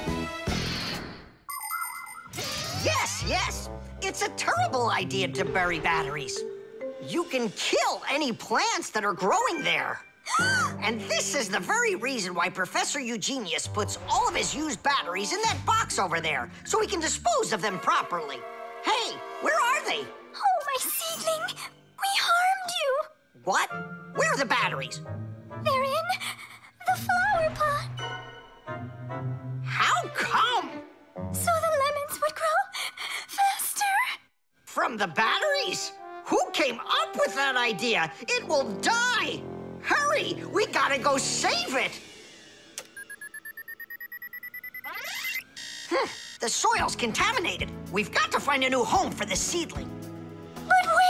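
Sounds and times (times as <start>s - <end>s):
background music: 0.0s - 0.8s, 2.7s - 12.3s, 13.4s - 26.3s, 26.9s - 32.3s, 34.9s - 42.4s, 46.6s - 51.0s
rapid electronic beeping trill: 43.0s - 46.4s.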